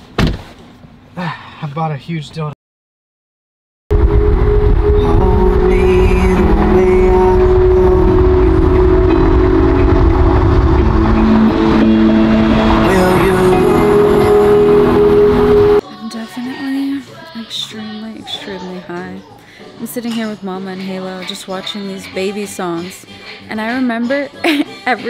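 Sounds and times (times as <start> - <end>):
music with held notes: 4.1 - 15.8.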